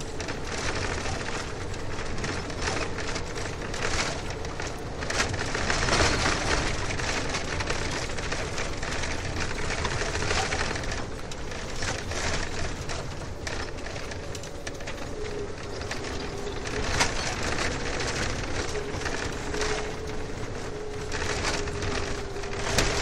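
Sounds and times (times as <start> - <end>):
car road and tyre noise: 0.0 - 23.0.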